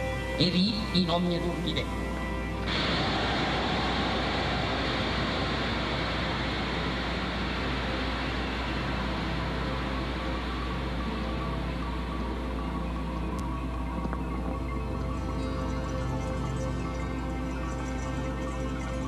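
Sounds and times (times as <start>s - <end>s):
low steady hum: 1.8s - 19.0s
audience applauding: 2.7s - 8.8s.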